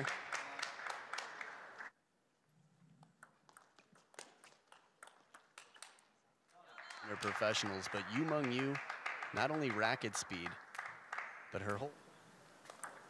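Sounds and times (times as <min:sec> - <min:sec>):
crowd noise: 0:06.7 - 0:13.0.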